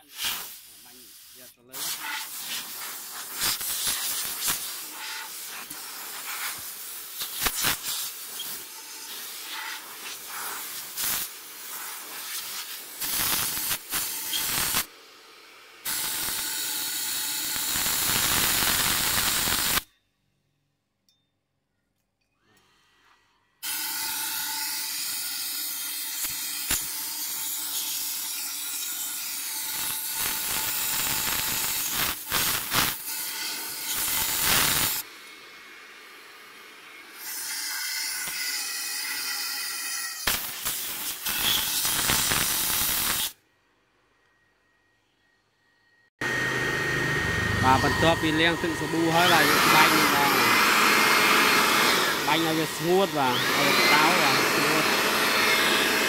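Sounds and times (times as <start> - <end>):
pump sprayer hissing: 0.0 - 14.9, 46.6 - 56.0.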